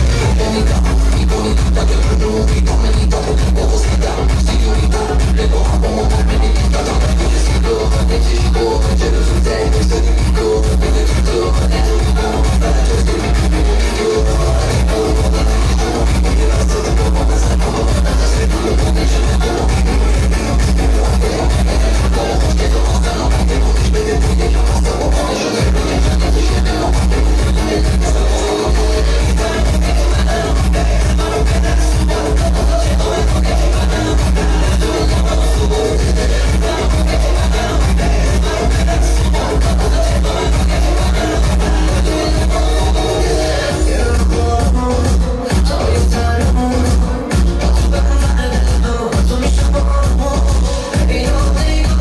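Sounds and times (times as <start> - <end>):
dance music over loudspeaker: 0.0 - 52.0.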